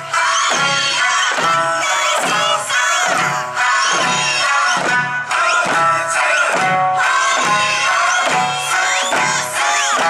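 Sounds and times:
barrel drums and hand drums: 0.0s - 10.0s
voices shouting rhythmic calls: 0.0s - 10.0s.

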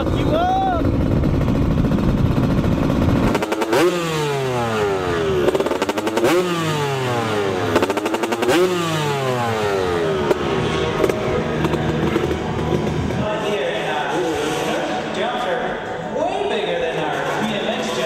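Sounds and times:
low engine rumble: 0.0s - 17.4s
dirt bike engines revving: 0.0s - 18.0s.

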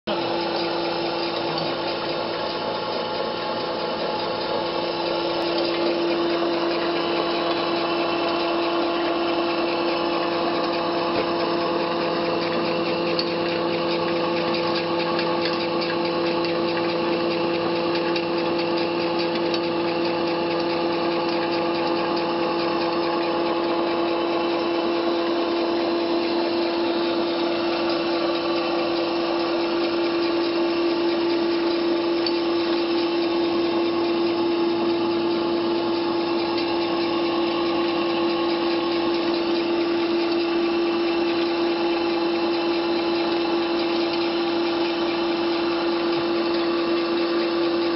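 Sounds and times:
grainy grinding rasp: 0.1s - 47.9s
pellet extruder motor hum and whine: 0.1s - 47.9s.

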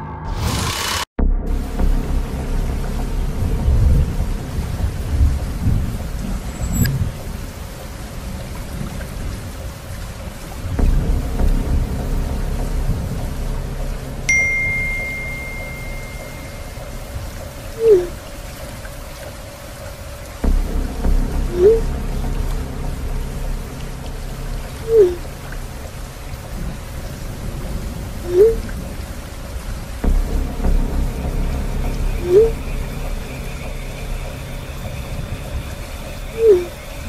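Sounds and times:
low dark ambient drone: 0.0s - 37.0s
rain: 0.3s - 37.0s
rolling thunder: 1.2s - 14.3s, 15.7s - 37.0s
held high tone: 14.3s - 17.2s
short whoosh: 20.4s - 22.8s.

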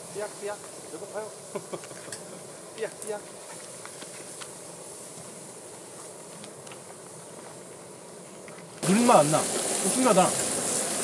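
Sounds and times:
food hissing in a pan: 0.0s - 11.0s.

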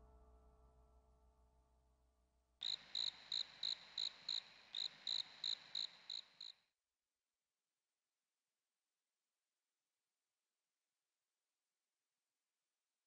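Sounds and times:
cricket chirping: 2.6s - 6.6s.

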